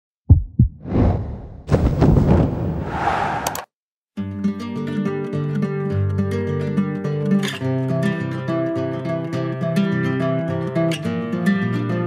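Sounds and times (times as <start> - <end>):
deep thumps: 0.3 - 3.0
rushing whoosh: 0.8 - 3.7.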